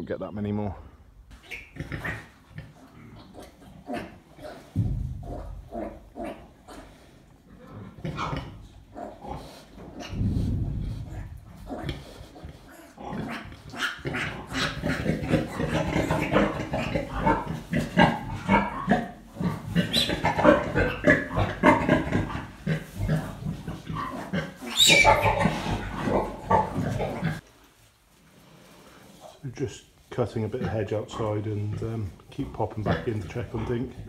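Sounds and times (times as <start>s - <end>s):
sow grunting: 1.7s - 27.4s
piglets squealing: 19.8s - 22.2s, 24.0s - 25.9s.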